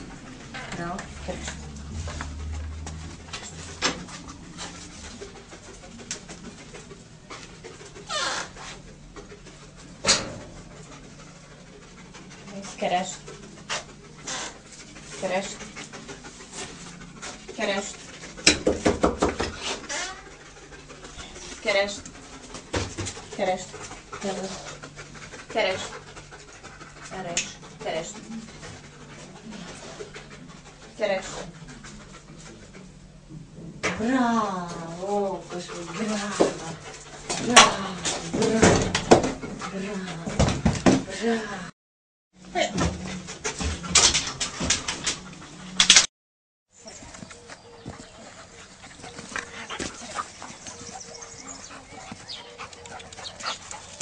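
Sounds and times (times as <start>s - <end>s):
dog panting: 0.0s - 33.3s, 34.6s - 41.4s, 42.8s - 46.0s, 46.8s - 54.0s.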